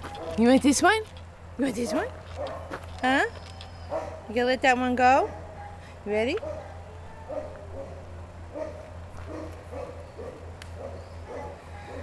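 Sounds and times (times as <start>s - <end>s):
dogs barking and yipping: 0.0s - 0.6s, 1.9s - 4.4s, 5.1s - 12.0s
steady low hum: 0.0s - 12.0s.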